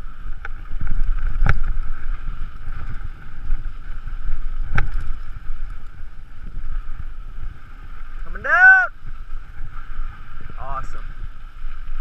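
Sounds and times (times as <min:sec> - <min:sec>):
bike tyres rumbling on dirt: 0:00.0 - 0:12.0
wind noise on microphone: 0:00.0 - 0:12.0
bike knocking on bumps: 0:00.2 - 0:07.6.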